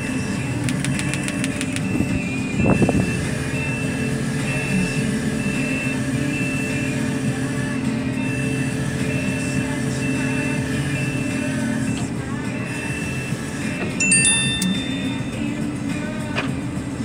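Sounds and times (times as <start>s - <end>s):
diesel engine running: 0.0s - 17.0s
high warning beeps: 1.0s - 6.9s, 14.0s - 15.6s.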